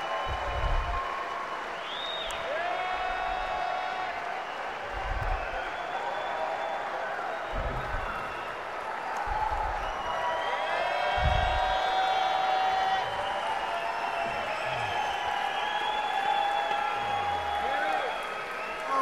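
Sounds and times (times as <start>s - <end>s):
audience applauding: 0.0s - 19.0s
shouts and whoops: 0.0s - 19.0s.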